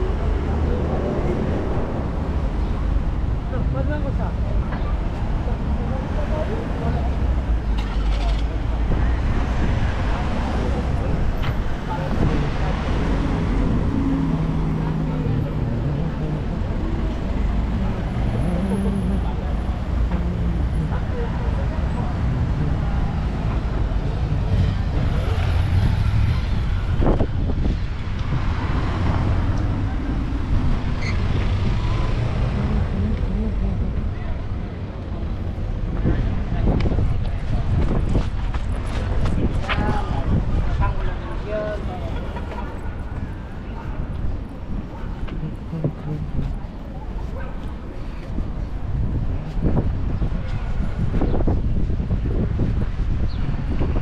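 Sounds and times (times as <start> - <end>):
passers-by talking: 0.0 - 54.0
road traffic noise: 0.0 - 54.0.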